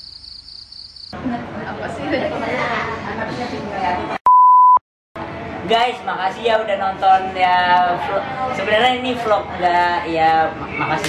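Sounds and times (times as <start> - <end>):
electronic censor beep: 4.3 - 4.8.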